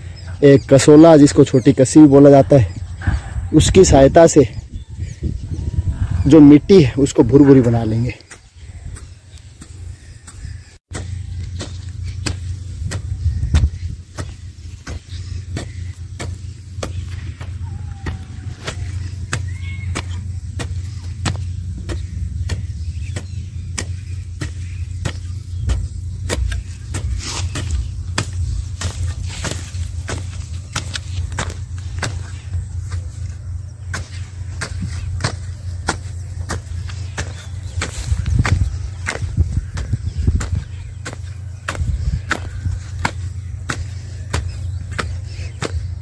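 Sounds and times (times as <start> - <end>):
steady low rumble: 2.7 - 46.0
hand hoe chopping dry soil: 6.4 - 46.0.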